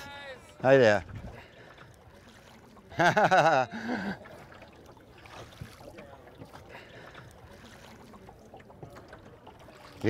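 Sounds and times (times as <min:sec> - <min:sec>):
oars splashing and dripping: 0:00.0 - 0:10.0.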